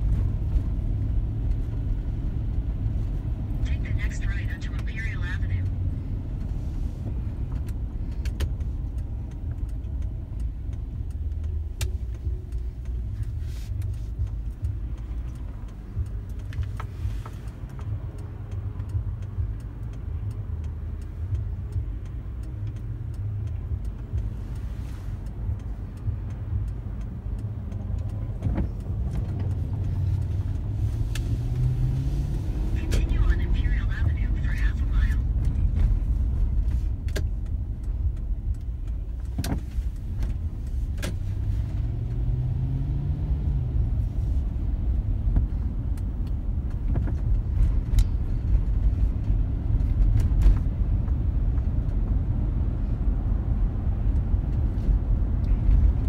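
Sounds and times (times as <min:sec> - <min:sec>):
car engine and road rumble: 0:00.0 - 0:56.0
sharp clicks inside car: 0:00.0 - 0:56.0.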